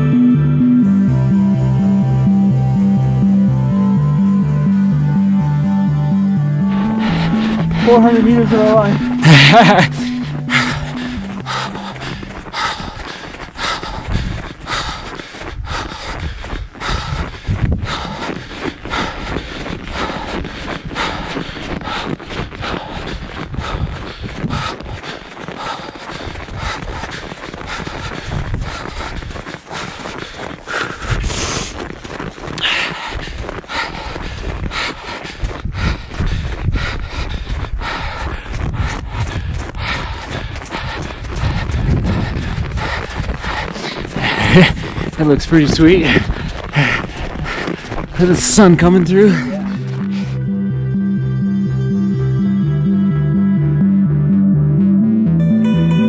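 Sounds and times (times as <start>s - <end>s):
hard breathing: 6.5s - 50.6s
footsteps crunching on snow: 6.7s - 50.4s.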